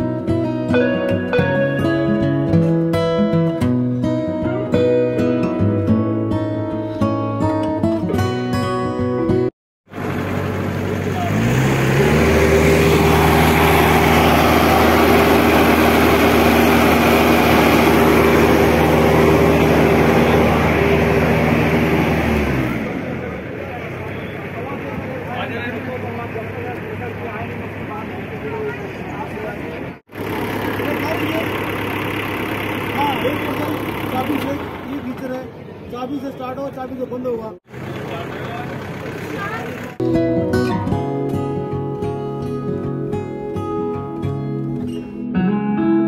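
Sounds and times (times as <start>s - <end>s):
machine engine starting and running: 9.9s - 35.4s, 37.7s - 40.0s
crowd chatter: 22.8s - 31.8s, 32.5s - 40.0s.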